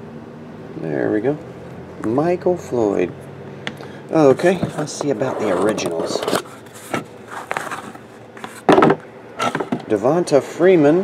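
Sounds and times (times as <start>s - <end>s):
cardboard scraping and rustling: 4.3s - 9.7s.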